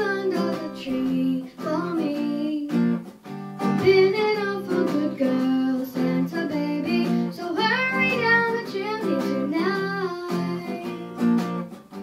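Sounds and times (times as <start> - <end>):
girl singing into a microphone: 0.0 - 3.0, 3.6 - 11.3
strummed backing music: 0.0 - 12.0.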